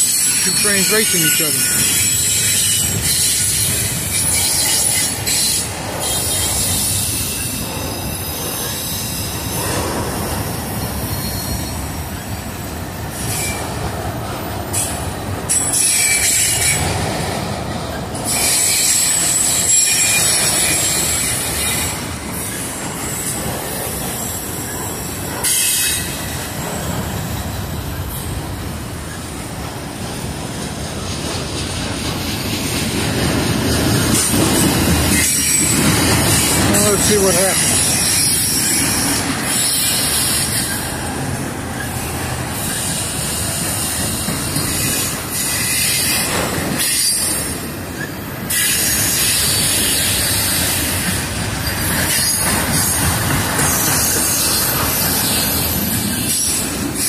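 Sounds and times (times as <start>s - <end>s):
high wheel squeal: 0.0s - 9.7s, 11.0s - 12.2s, 15.5s - 17.0s, 18.2s - 23.4s, 35.1s - 57.0s
train wheels rumbling on rail: 0.0s - 57.0s.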